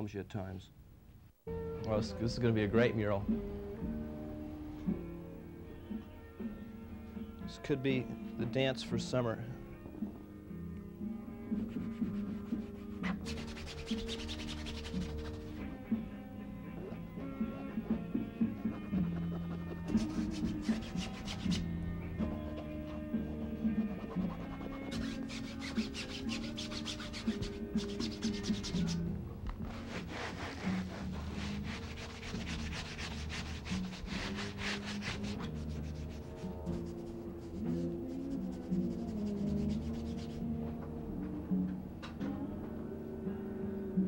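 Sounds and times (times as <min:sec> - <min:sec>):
music with bass line: 0:09.6 - 0:42.6
hand rubbing pigment on canvas: 0:11.6 - 0:15.6, 0:16.8 - 0:21.7, 0:22.5 - 0:40.4.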